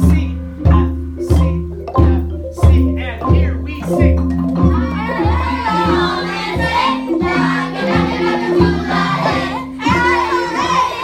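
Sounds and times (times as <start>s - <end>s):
recorded drum beat: 0.0s - 11.0s
wooden xylophones and marimbas: 0.0s - 11.0s.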